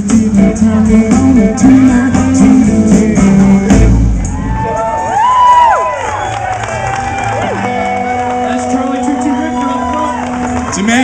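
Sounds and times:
bass: 0.0 - 11.0
drums: 0.0 - 11.0
electric guitar: 0.0 - 11.0
sliding high guitar notes: 7.2 - 11.0.

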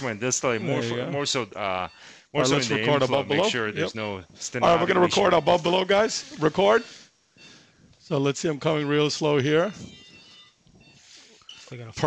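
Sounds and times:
man's voice: 0.0 - 1.6, 2.4 - 6.9
faint high steady tones: 0.0 - 12.0.

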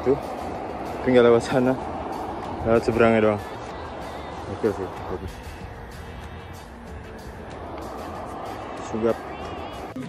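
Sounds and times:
music playing: 0.0 - 10.0
road rumble: 0.0 - 10.0.

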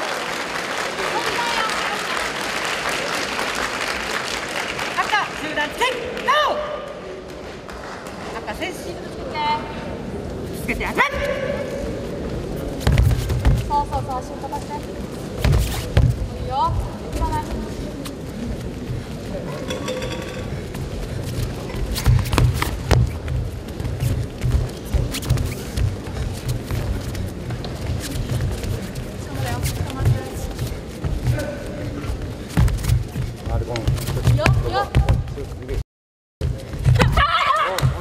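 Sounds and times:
people shouting in a hall: 5.9 - 7.2, 10.9 - 12.0, 37.0 - 38.0
bare feet thudding on mats: 12.8 - 13.8
crowd din: 14.8 - 25.0.

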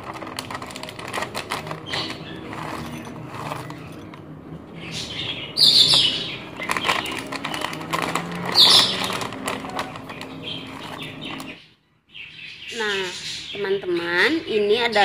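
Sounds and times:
plastic bag crinkling: 0.0 - 11.6.

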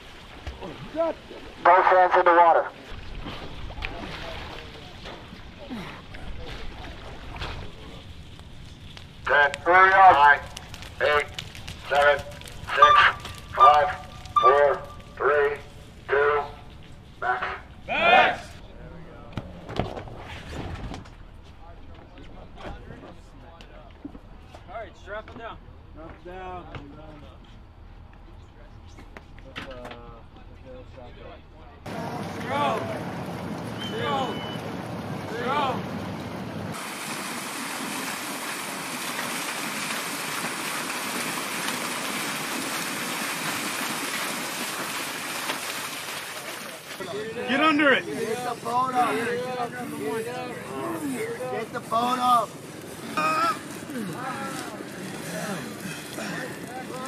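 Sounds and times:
distant men shouting: 11.0 - 18.6, 31.9 - 36.0.

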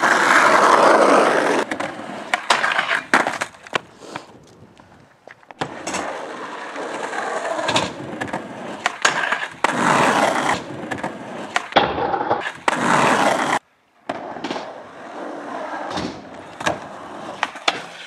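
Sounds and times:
skateboard grinding on metal rail: 0.0 - 3.5
skateboard popping and landing: 0.0 - 18.0
skateboard wheels rolling on concrete: 0.0 - 18.0.

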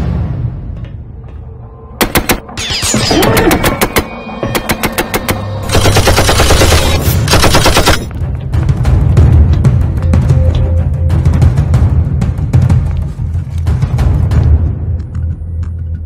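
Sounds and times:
dramatic film score: 0.0 - 16.0
automatic gunfire bursts: 5.7 - 8.1.

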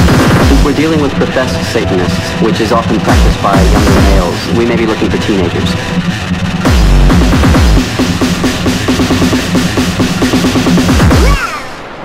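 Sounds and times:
distorted kick drums: 0.0 - 11.4
harsh noisy wash: 0.0 - 12.0.

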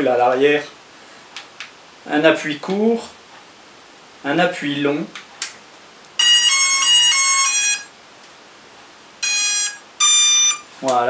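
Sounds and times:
drone electronic beep tune: 6.2 - 7.9, 9.2 - 10.7
single electronic beeps: 9.2 - 10.7.

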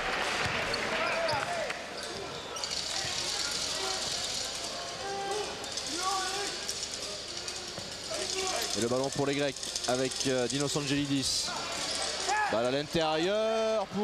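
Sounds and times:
crowd noise: 0.0 - 14.0.

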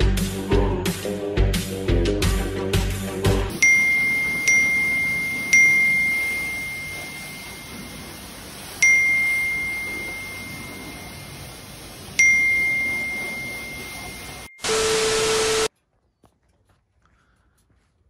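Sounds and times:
phone notification chimes: 3.5 - 7.9, 8.8 - 11.2, 12.2 - 15.0
hissing static: 3.5 - 15.7.

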